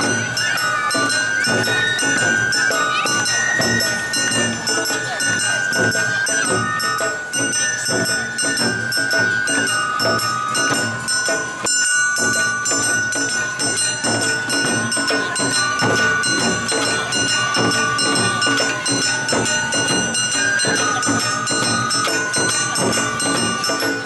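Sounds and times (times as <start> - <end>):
drums beating: 0.0 - 24.0
hand gong clanging: 0.0 - 24.0
high melody with long notes: 0.0 - 24.0.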